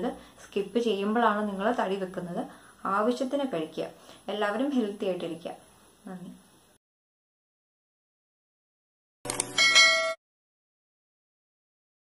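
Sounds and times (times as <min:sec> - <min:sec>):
bright bell chime: 0:09.5 - 0:10.2.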